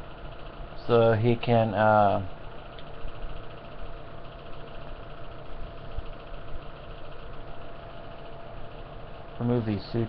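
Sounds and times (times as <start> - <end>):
mechanical hum: 0.0 - 10.0.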